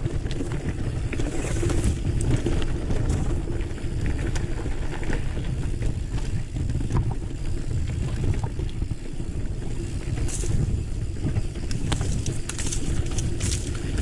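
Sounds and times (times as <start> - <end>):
bike clicks and rattles: 0.0 - 14.0
bike tyres rumbling on gravel: 0.0 - 14.0
wind: 0.0 - 14.0.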